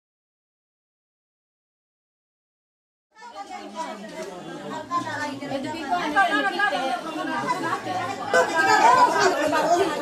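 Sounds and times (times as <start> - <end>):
voices chattering: 3.2 - 10.0.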